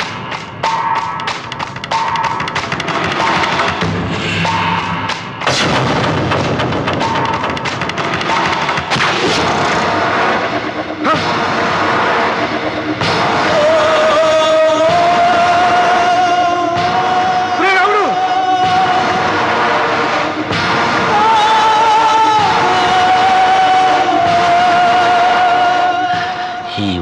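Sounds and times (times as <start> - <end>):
sharp loud hits: 0.0 - 24.8
driving drums and percussion: 0.0 - 26.4
dramatic film score: 0.0 - 27.0.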